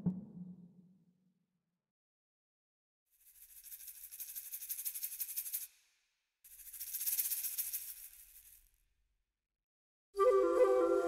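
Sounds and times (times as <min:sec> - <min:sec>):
shaken rattle percussion: 0:03.1 - 0:08.8.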